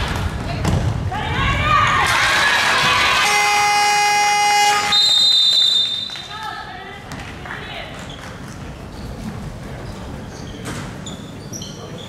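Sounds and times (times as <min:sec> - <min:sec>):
harsh buzzer: 0:03.2 - 0:05.1
referee's whistle blast: 0:03.2 - 0:06.3.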